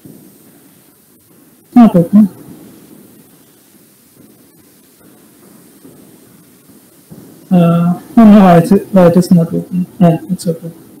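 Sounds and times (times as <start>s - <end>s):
faint microphone hiss: 0.0s - 11.0s.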